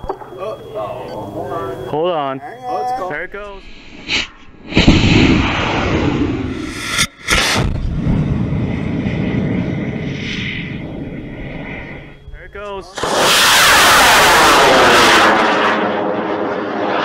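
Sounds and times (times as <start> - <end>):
rocket motor roaring: 3.4 - 17.0.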